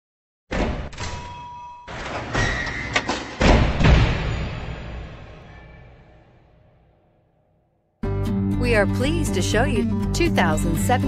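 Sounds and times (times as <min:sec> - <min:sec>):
deep cinematic thuds and hits: 0:03.3 - 0:05.8.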